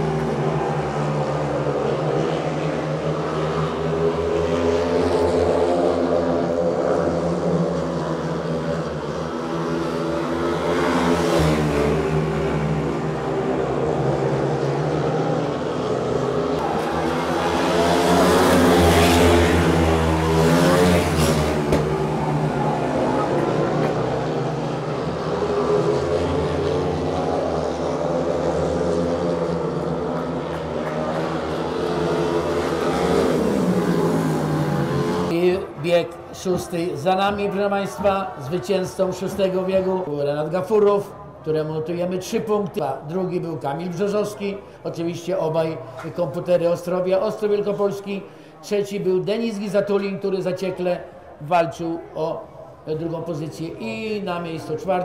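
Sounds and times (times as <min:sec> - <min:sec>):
motorcycle engines racing: 0:00.0 - 0:55.0.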